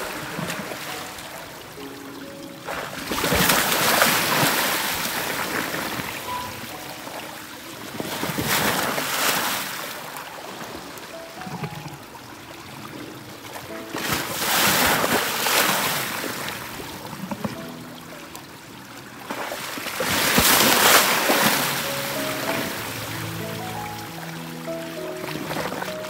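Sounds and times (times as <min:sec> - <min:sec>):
waves splashing against ice: 0:02.7 - 0:06.4, 0:07.9 - 0:10.2, 0:13.9 - 0:17.6, 0:19.2 - 0:26.0.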